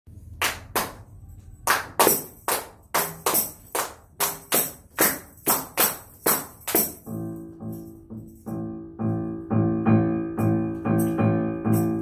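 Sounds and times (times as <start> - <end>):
tambourine hits: 1.8 - 9.4.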